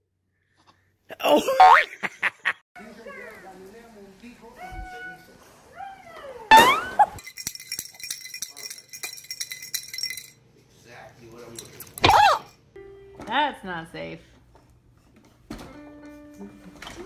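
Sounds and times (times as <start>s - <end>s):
baby toy tinkling: 7.2s - 10.5s
baby squealing: 12.0s - 12.5s.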